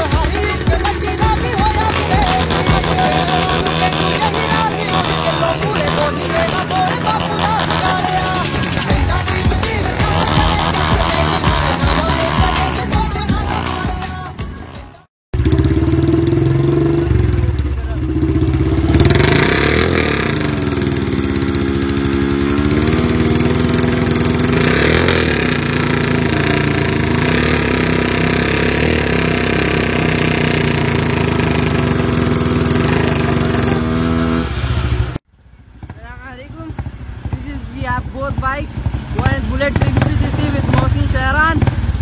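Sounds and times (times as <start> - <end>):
motorcycle engine revving: 0.0 - 42.0.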